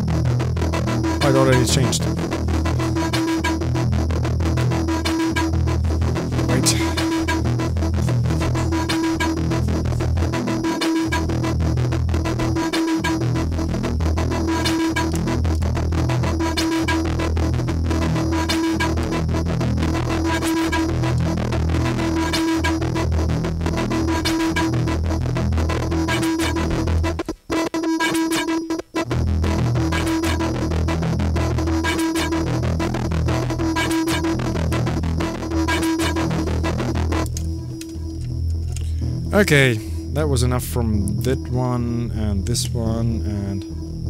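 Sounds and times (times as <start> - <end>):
techno kick-drum beat: 0.0 - 27.3, 28.0 - 42.0
busy high synth sounds: 0.0 - 44.0
repeating synth tone: 0.0 - 44.0.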